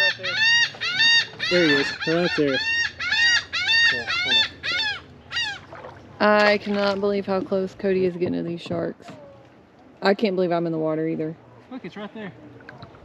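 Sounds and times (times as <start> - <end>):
bird calling: 0.0 - 7.0.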